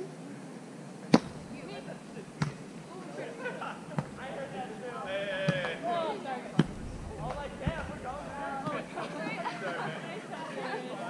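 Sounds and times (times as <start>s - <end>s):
volleyball smacks: 1.1s - 1.5s, 2.4s - 2.6s
players' voices: 1.1s - 11.0s.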